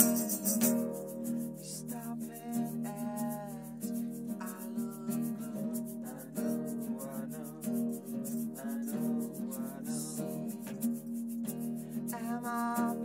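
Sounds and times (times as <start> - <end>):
classical guitar strummed: 0.0 - 13.0
man singing: 1.6 - 10.9, 12.1 - 13.0.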